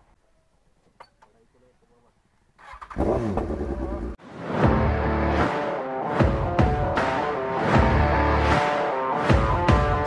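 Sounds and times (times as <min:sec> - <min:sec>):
motorcycle engine revving hard: 0:02.6 - 0:04.2
music: 0:04.2 - 0:10.0.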